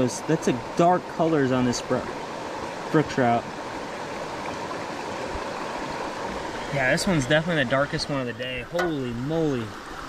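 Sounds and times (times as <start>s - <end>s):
creek water running over rocks: 0.0s - 10.0s.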